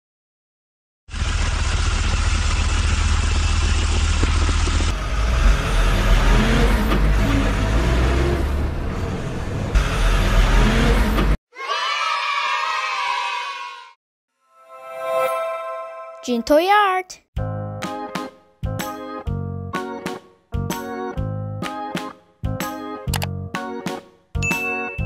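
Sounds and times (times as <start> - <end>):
heavy machine engine revving: 1.1 - 11.4.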